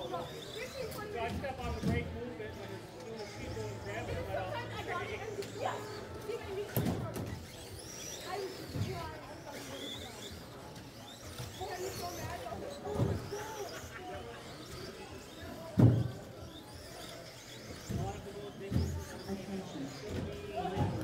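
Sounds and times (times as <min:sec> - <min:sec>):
faint high electric motor whines: 0:00.0 - 0:21.0.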